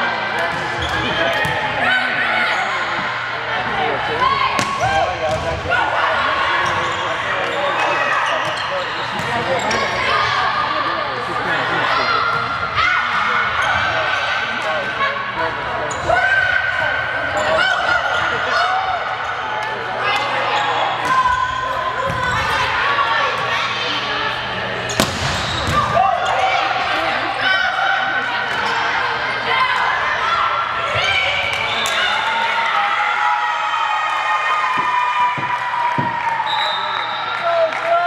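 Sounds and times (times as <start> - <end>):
sneakers squeaking: 0.5 - 1.8, 4.5 - 5.6, 6.6 - 10.4, 15.8 - 19.7, 24.8 - 27.0
volleyball being struck: 24.9 - 25.9.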